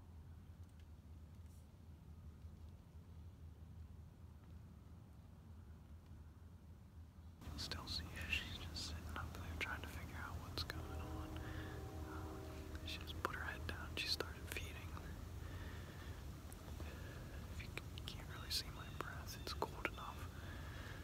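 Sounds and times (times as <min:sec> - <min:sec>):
man whispering: 0:07.4 - 0:21.0.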